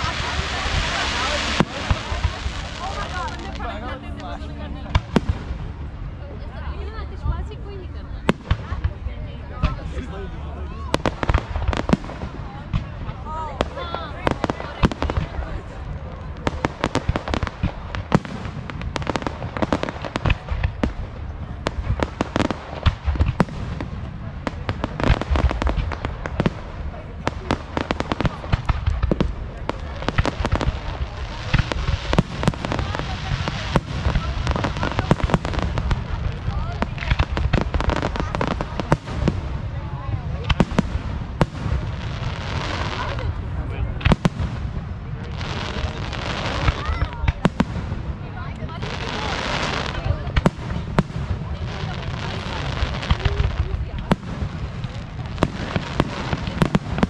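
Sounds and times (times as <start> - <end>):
fireworks booming: 0.0 - 3.9, 4.5 - 6.6, 10.8 - 57.0
fireworks crackling: 0.0 - 7.6, 8.2 - 57.0.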